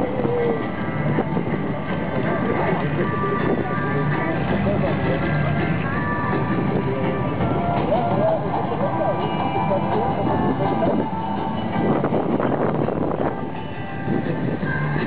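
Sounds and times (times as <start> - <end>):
indistinct voices: 0.0 - 15.0
music: 0.0 - 15.0.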